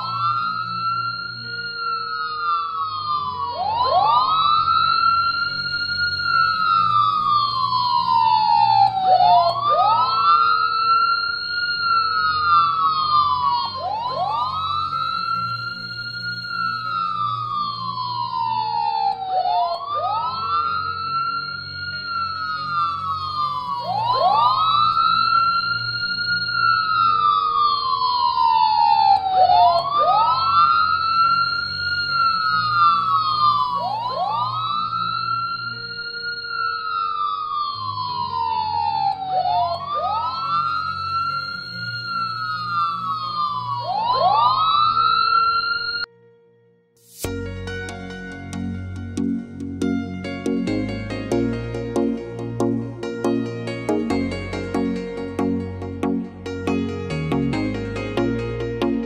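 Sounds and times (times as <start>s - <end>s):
emergency siren wailing: 0.0s - 46.1s, 48.6s - 59.0s.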